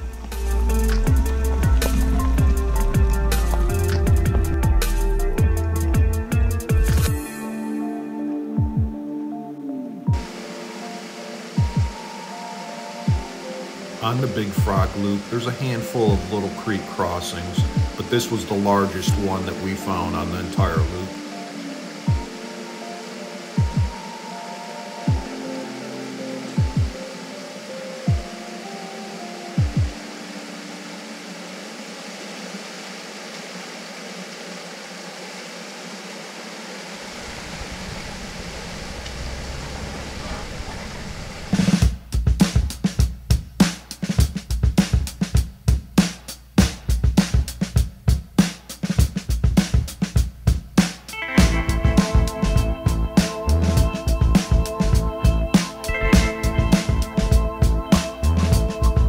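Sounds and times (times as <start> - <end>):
vehicle low rumble: 0.0 - 6.4, 36.8 - 41.8
deep bass-drum hits: 0.0 - 7.2, 51.4 - 59.0
steady rushing hiss: 0.0 - 8.5, 10.0 - 59.0
background music: 0.0 - 32.0, 41.6 - 59.0
held synth chords: 0.0 - 32.2, 51.2 - 59.0
deep drum hits: 0.1 - 7.1.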